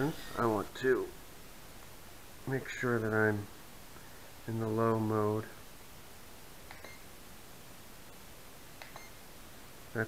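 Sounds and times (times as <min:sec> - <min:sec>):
faint electronic beeps: 0:06.7 - 0:07.1, 0:08.8 - 0:09.2.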